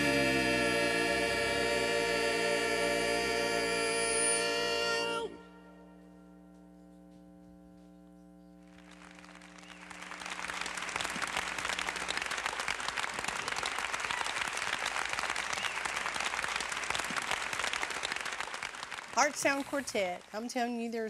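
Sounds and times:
gospel quartet singing held chord: 0:00.0 - 0:06.3
audience applause: 0:08.8 - 0:19.4.

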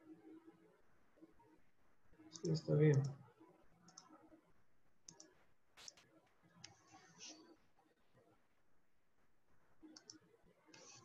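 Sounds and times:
computer mouse clicks: 0:02.3 - 0:03.2, 0:03.9 - 0:04.1, 0:05.0 - 0:06.0, 0:09.8 - 0:11.0.

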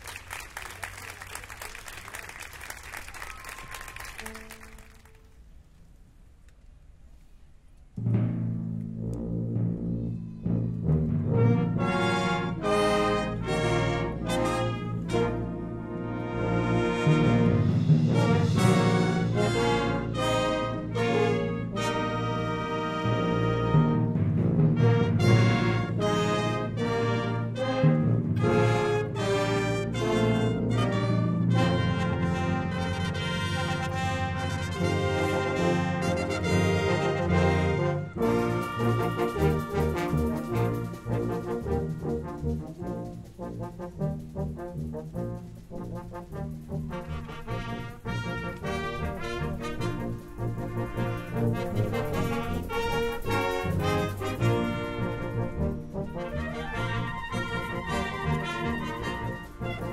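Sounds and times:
wind band playing: 0:00.0 - 0:05.8, 0:08.9 - 0:59.9.

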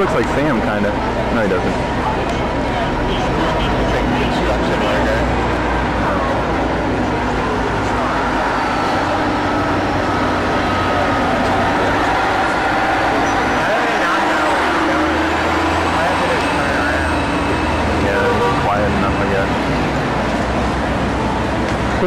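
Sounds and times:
crowd chattering: 0:00.0 - 0:22.0
low engine rumble: 0:00.0 - 0:22.0
vehicle engines and tyre noise: 0:00.0 - 0:22.0.

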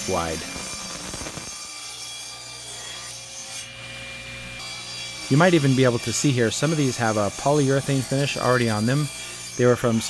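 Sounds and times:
table saw ripping a board: 0:00.0 - 0:10.0.

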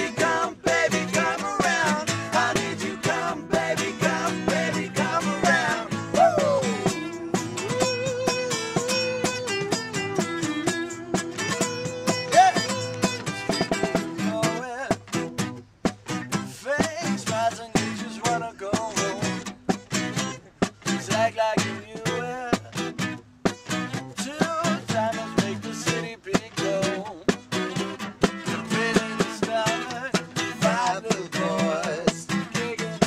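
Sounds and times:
acoustic guitar strumming: 0:00.0 - 0:33.0
person singing wavering melody: 0:04.2 - 0:08.8.

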